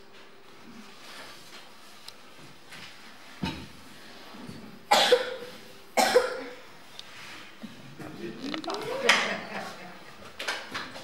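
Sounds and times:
man coughing into microphone: 4.9s - 5.4s, 6.0s - 6.6s.

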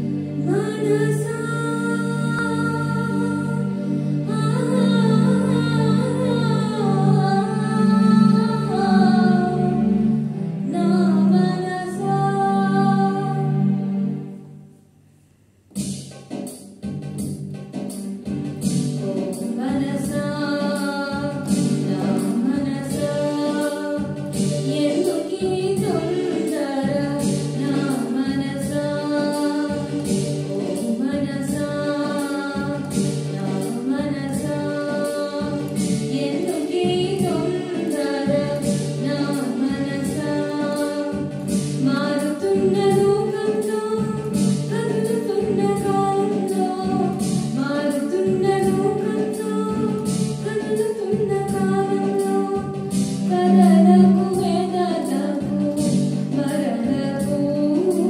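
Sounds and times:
girl singing into microphone: 0.0s - 13.8s, 19.3s - 58.0s
electronic keyboard with beat: 15.7s - 58.0s.

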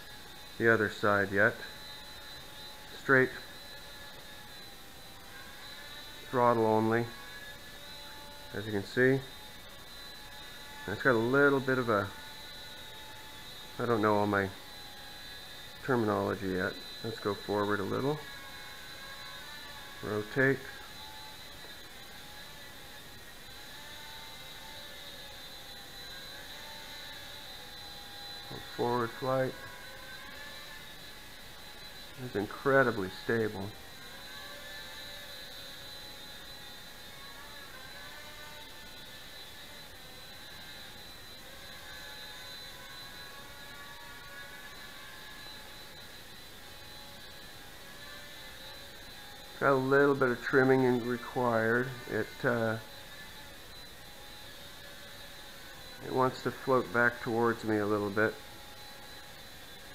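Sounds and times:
quadcopter high-pitched whine: 0.0s - 59.9s.

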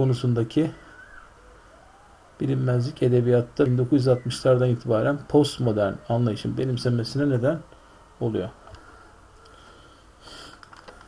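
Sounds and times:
room hiss: 0.0s - 10.8s
faint clicks: 10.4s - 11.0s.

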